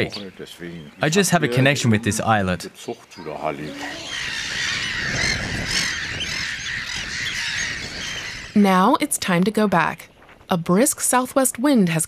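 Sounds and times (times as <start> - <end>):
seabirds calling: 0.0 - 10.9
wind rumbling on microphone: 3.6 - 12.0.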